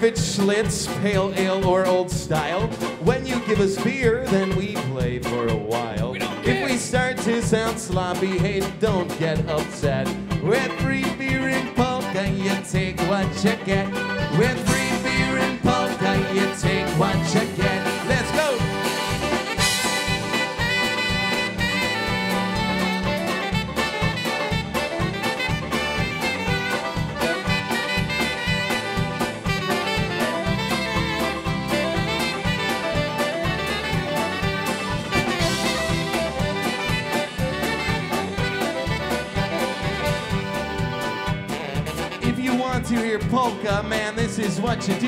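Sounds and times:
polka band playing: 0.0s - 45.0s.

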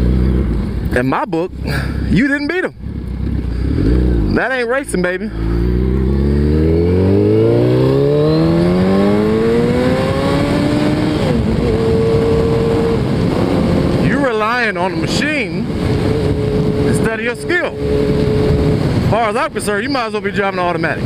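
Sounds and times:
motorcycle engine accelerating: 0.0s - 2.1s, 2.7s - 19.6s
wind rushing over microphone: 5.4s - 21.0s.

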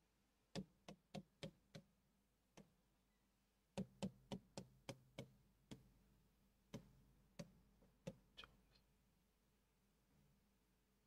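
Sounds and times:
pen tapping on whiteboard screen: 0.5s - 1.9s, 3.7s - 5.9s, 6.7s - 8.3s.

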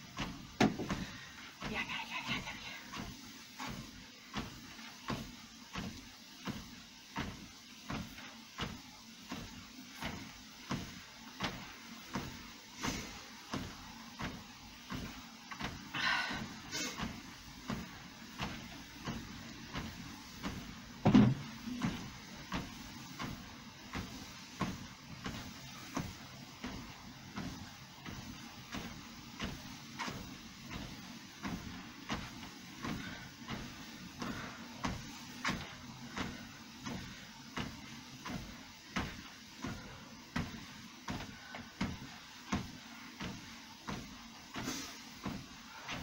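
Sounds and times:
footfalls on treadmill belt: 0.0s - 46.0s
treadmill motor hum: 0.0s - 46.0s
heavy thump: 0.2s - 1.1s, 21.0s - 22.0s.

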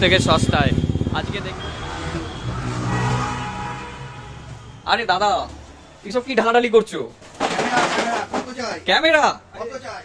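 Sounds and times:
vehicle engine hum: 0.0s - 4.9s.

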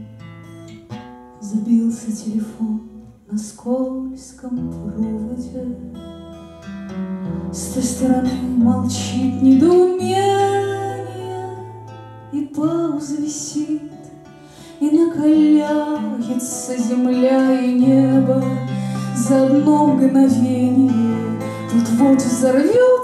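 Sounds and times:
strummed acoustic guitar: 0.0s - 3.2s, 4.6s - 23.0s
woman singing: 1.4s - 6.0s, 7.6s - 23.0s.

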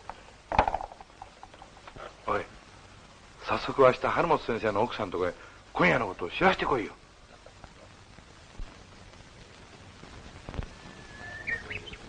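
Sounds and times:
soundtrack hiss: 0.0s - 12.0s
songbird whistling: 10.7s - 12.0s.

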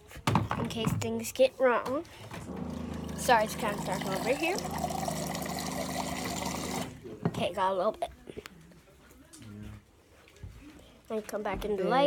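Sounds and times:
water running into a cup: 2.4s - 7.0s.

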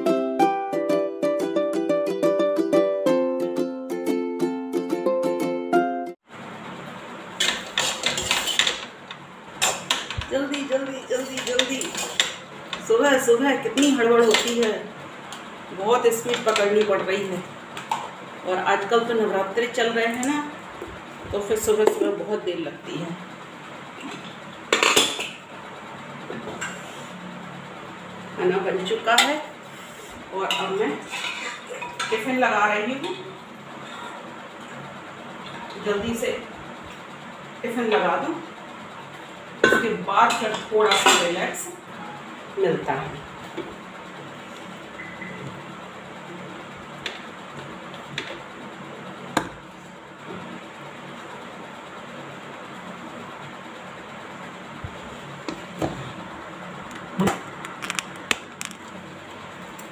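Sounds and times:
steel pots and utensils clattering: 30.4s - 32.3s.

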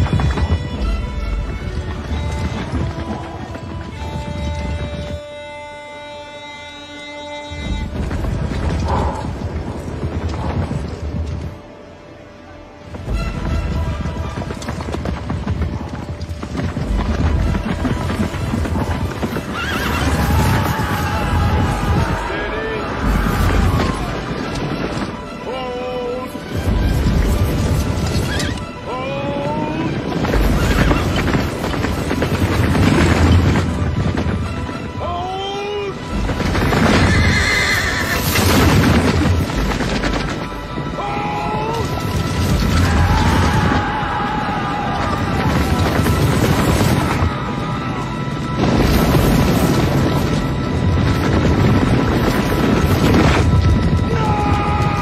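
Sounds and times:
horses galloping: 0.0s - 55.0s
orchestral score music: 0.0s - 55.0s
horses neighing: 13.2s - 33.8s, 34.9s - 47.3s.

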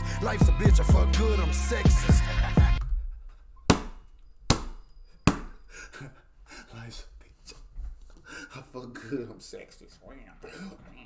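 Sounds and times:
hand slapping a desk: 3.7s - 5.6s.

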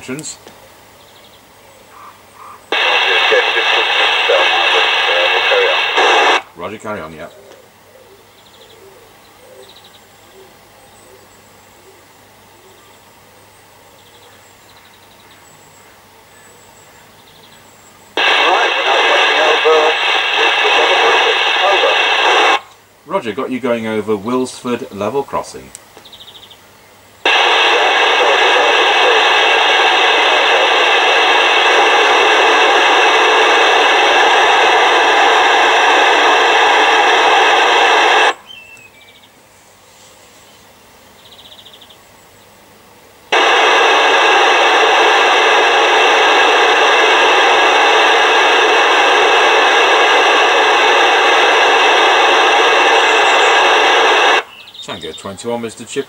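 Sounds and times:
radio static hissing: 0.0s - 0.7s, 1.9s - 7.8s, 18.1s - 25.8s, 27.2s - 38.6s, 43.3s - 56.0s.

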